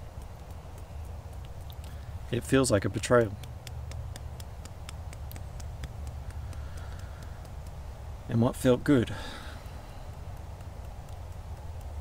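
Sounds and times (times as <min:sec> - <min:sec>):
fingertips tapping on head: 0:00.0 - 0:12.0
low steady rumble: 0:00.0 - 0:12.0.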